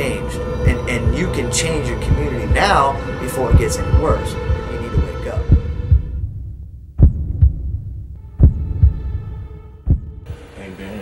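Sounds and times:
heartbeat thumps: 0.0 - 10.3
low steady hum: 0.0 - 10.4.

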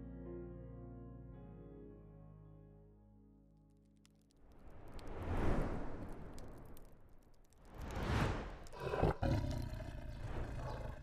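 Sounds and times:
rushing whooshes: 4.6 - 8.8.

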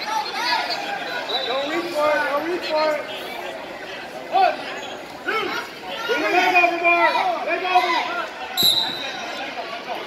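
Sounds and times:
referee's whistle blast: 8.6 - 9.3.

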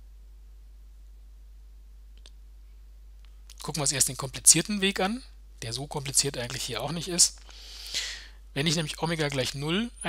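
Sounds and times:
steady low hum: 0.0 - 10.0
faint clicks: 2.2 - 2.4.

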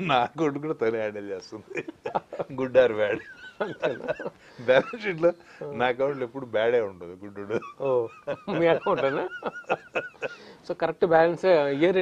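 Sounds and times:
men laughing: 1.7 - 6.4, 7.4 - 10.6.

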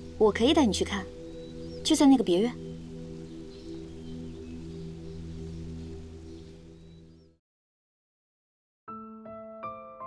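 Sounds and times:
soft sustained drone score: 0.0 - 7.2.

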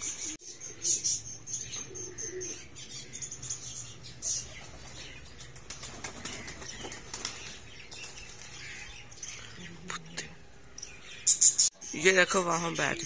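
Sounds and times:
pigeon wings flapping: 5.6 - 8.5.

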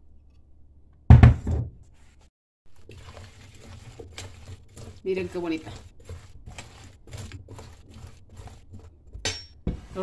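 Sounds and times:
spoon stirring in pot: 2.7 - 10.0.

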